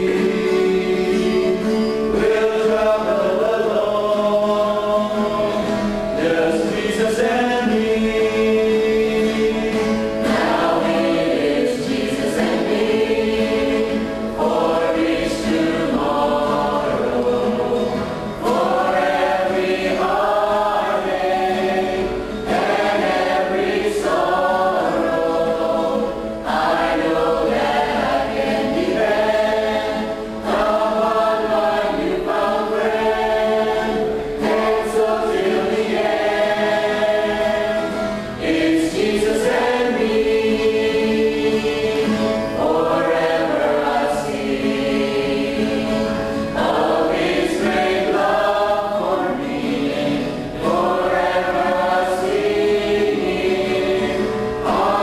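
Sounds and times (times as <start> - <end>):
choir singing worship song: 0.0 - 55.0.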